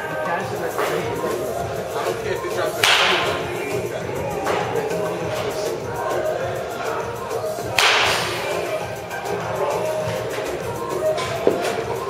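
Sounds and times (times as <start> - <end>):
background music: 0.0 - 12.0
baseball bat cracking ball: 2.7 - 3.8, 7.7 - 8.7.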